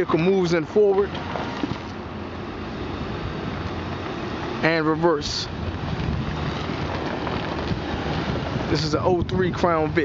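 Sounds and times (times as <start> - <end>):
wind noise on microphone: 1.0 - 10.0.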